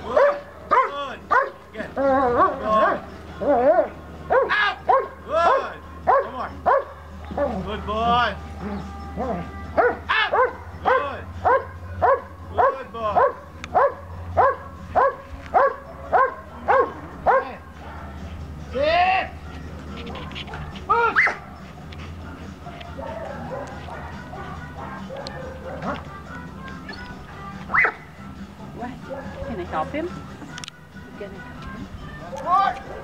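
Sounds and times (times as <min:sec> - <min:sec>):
dog barking: 0:00.1 - 0:07.6, 0:08.6 - 0:18.3, 0:19.9 - 0:21.9, 0:22.6 - 0:26.1, 0:27.7 - 0:28.0, 0:29.0 - 0:29.9.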